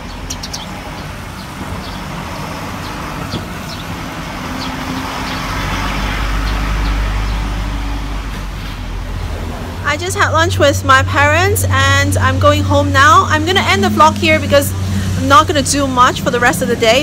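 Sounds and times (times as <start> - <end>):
motor vehicles rumbling: 0.0 - 17.0
vehicle passing: 0.0 - 17.0.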